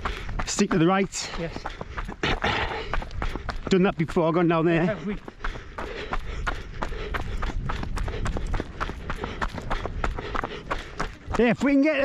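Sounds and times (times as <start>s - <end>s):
running footfalls on rough path: 0.0s - 12.0s.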